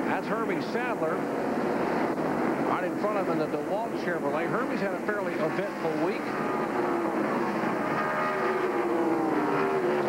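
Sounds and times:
race car engines: 0.0s - 10.0s.

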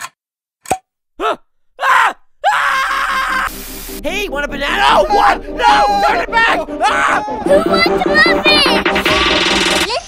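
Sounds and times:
cartoon voice screaming: 4.7s - 8.7s
cartoon voice shouting: 4.7s - 8.8s.

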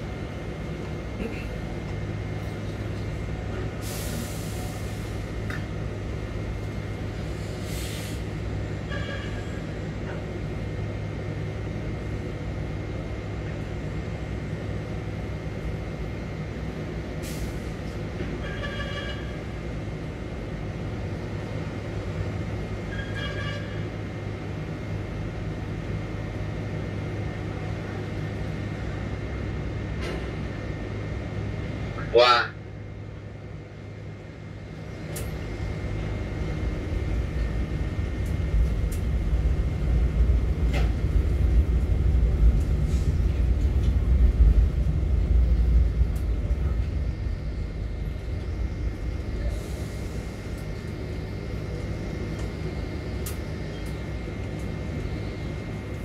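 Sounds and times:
crane machinery drone: 0.0s - 56.0s
short hisses: 7.6s - 8.2s.

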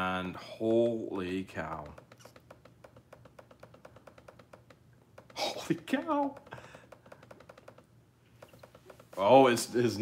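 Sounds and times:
rapid computer clicking: 1.6s - 9.6s.

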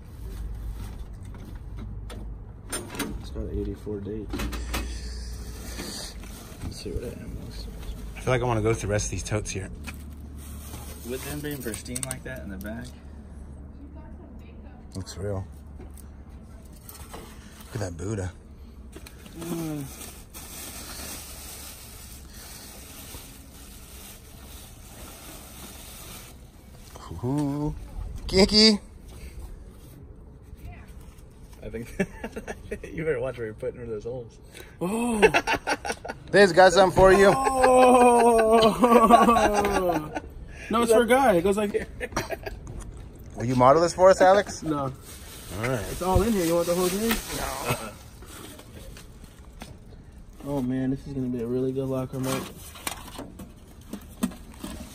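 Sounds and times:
plastic bag rustling and crinkling: 9.5s - 11.9s, 19.2s - 27.0s, 44.3s - 50.8s.

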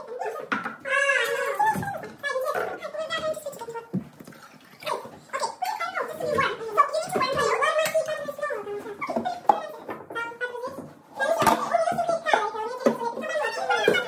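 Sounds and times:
women chatting: 0.0s - 4.1s, 4.8s - 14.0s.

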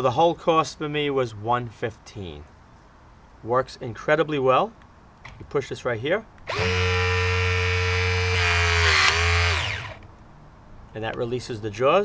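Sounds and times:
hydraulic crimper pump motor whine: 6.5s - 10.0s.

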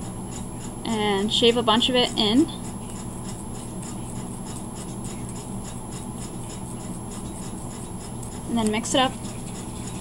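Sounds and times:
toothpick scraping chalk pastel: 0.0s - 10.0s.

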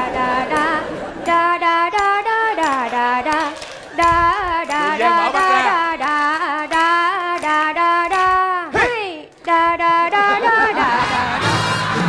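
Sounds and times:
woman singing unaccompanied: 0.0s - 11.4s.

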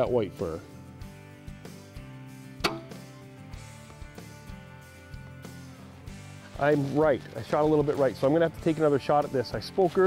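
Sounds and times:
background music: 0.0s - 10.0s
crossbow firing: 2.6s - 3.2s.

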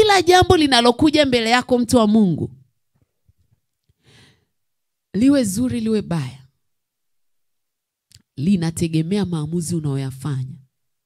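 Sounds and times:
breath into a microphone: 3.9s - 4.6s.

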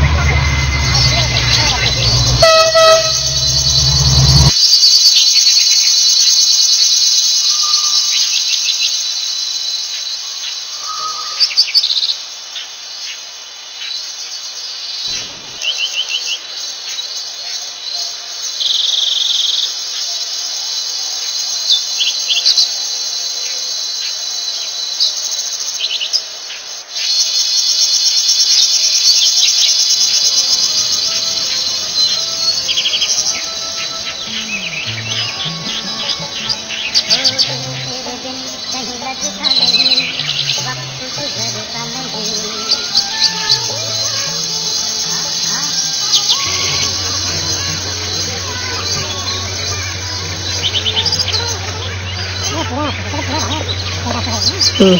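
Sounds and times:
bird chirps and calls: 0.0s - 12.2s, 13.8s - 54.9s
insect chorus: 0.0s - 54.9s.

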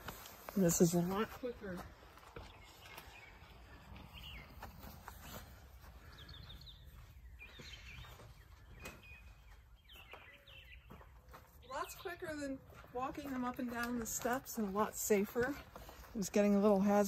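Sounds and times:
small birds chirping: 0.4s - 17.0s.

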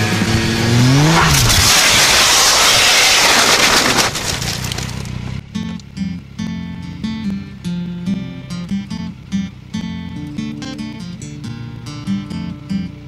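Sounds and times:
motorcycle engine revving: 0.0s - 13.0s
crashing bike scraping: 0.7s - 5.2s.

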